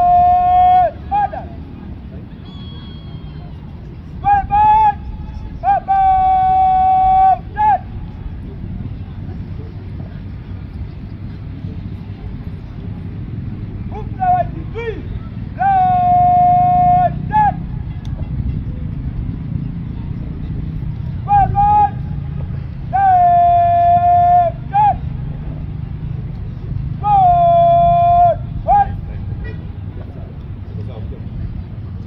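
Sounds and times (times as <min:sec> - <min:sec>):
steady low rumble: 0:00.0 - 0:32.0.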